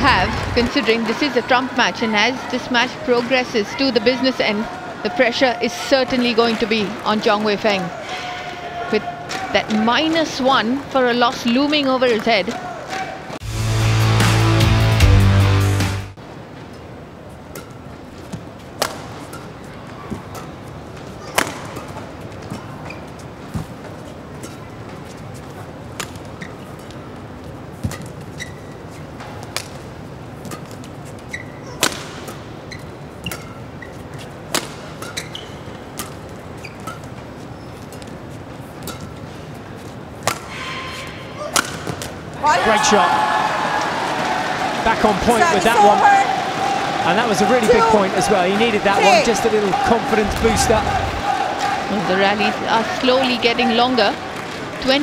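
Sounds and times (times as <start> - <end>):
arena crowd hubbub: 0.0 - 13.4, 16.1 - 55.0
rackets striking shuttlecock: 21.2 - 22.6, 31.7 - 32.4, 34.5 - 35.3, 40.2 - 40.6, 41.4 - 42.2.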